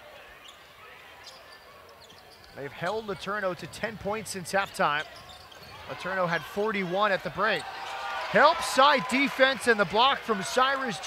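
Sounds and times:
low hum of large arena: 0.0 - 11.0.

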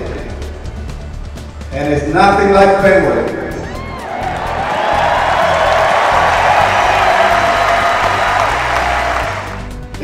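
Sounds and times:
music playing: 0.0 - 10.0
stadium crowd cheering and applauding: 3.6 - 10.0.

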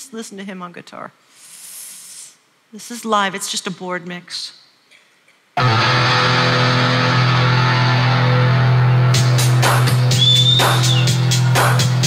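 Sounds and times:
electric guitar chord ringing: 5.6 - 9.6
high bending guitar note: 5.6 - 10.1
drums steady beat: 9.1 - 12.0.

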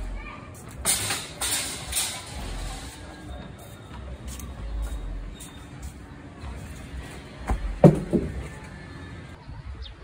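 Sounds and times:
plastic chairs knocking and clattering: 7.5 - 8.5.

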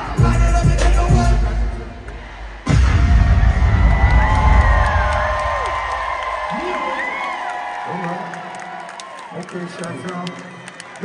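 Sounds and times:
crowd cheering and whooping: 2.6 - 11.0
deep bass hit: 2.7 - 5.9.

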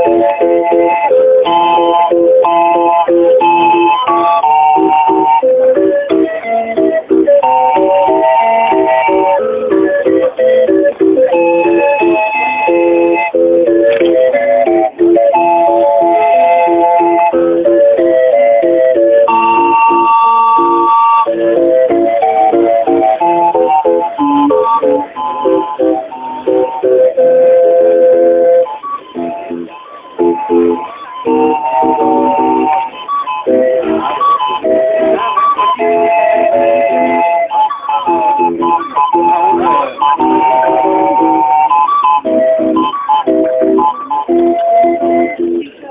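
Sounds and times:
barrel organ playing a tune: 0.0 - 45.9.

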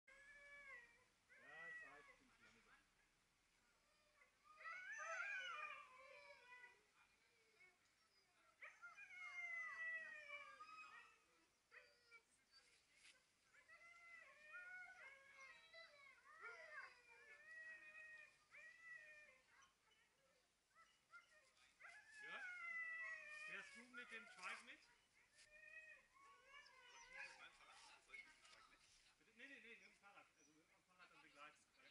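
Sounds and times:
dogs howling and whining: 0.1 - 2.7, 3.8 - 6.9, 7.5 - 24.8, 25.5 - 28.2
dogs yipping: 4.5 - 6.6, 8.0 - 24.8, 25.6 - 28.4.

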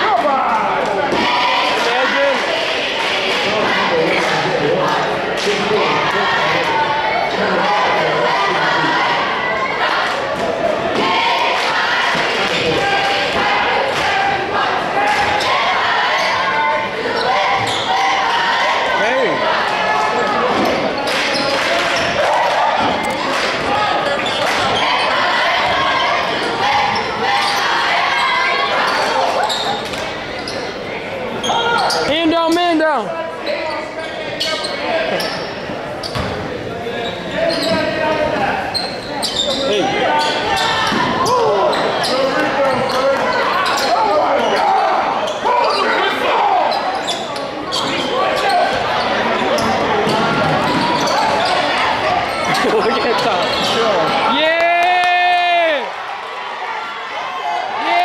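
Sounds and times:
crowd chatter: 0.0 - 58.0.

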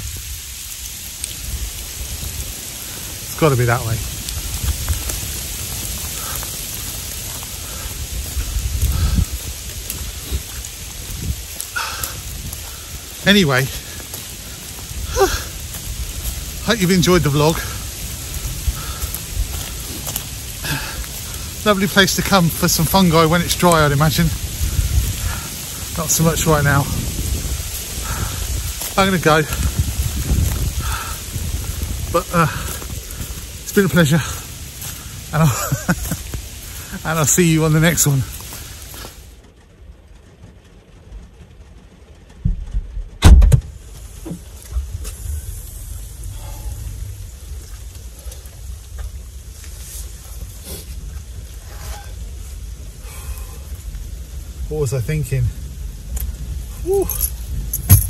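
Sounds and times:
wind buffeting microphone: 0.0 - 39.1, 55.5 - 58.0
heavy rain falling: 0.0 - 58.0.

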